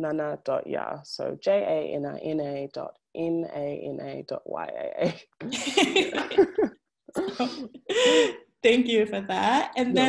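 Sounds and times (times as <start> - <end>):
woman laughing: 5.5 - 8.4.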